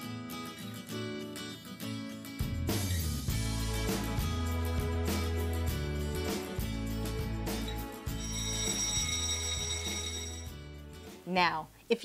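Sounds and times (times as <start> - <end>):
background music: 0.0 - 11.7
bell-like timer chime: 7.7 - 10.8.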